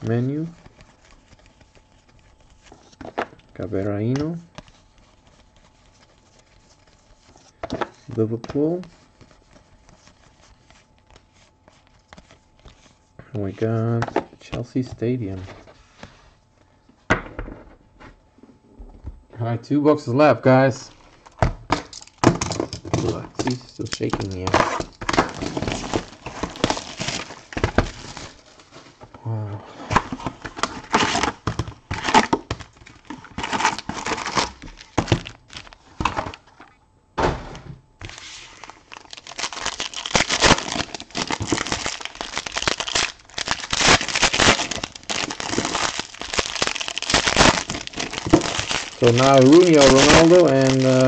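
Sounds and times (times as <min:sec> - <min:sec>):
foil packs crinkling: 0:22.0 - 0:28.7, 0:30.0 - 0:36.3, 0:38.0 - 0:51.0.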